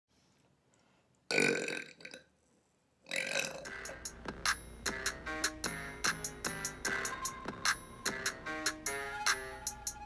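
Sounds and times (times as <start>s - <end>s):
woman burping loudly: 1.3s - 2.3s, 3.1s - 3.7s
music: 3.6s - 10.0s.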